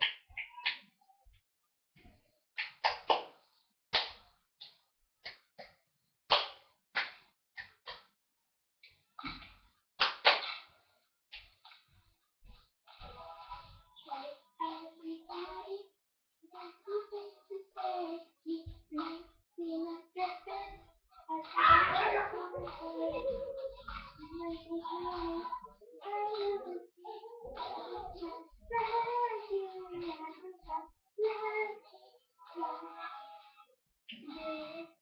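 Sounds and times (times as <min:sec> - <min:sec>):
girl singing: 0:13.5 - 0:35.0.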